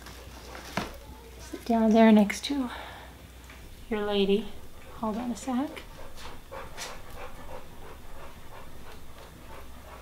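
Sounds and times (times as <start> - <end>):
dog breathing noisily: 4.0 - 10.0.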